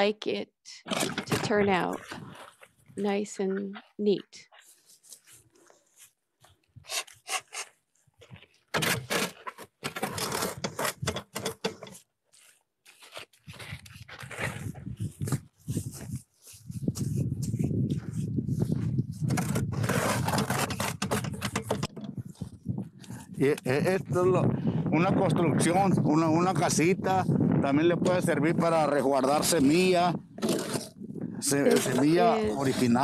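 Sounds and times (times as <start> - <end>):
wet mud scraping in mold: 19.2 - 22.5, 30.4 - 33.0.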